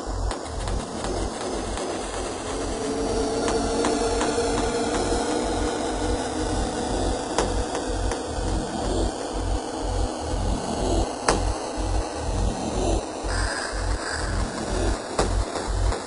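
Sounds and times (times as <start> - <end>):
droning synth pad: 0.0 - 16.0
kick drum pulse: 0.0 - 16.0.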